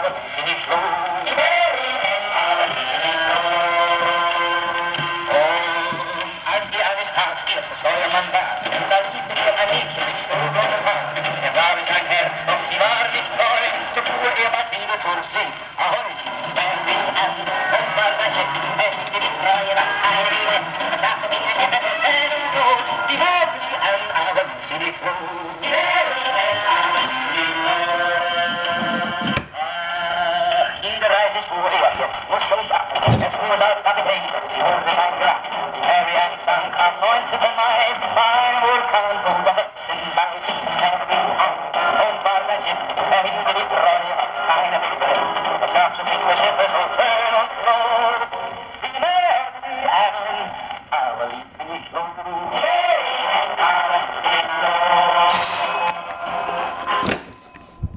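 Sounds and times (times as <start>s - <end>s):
gramophone record with singer: 0.0s - 57.9s
bright metallic ring: 55.3s - 57.9s.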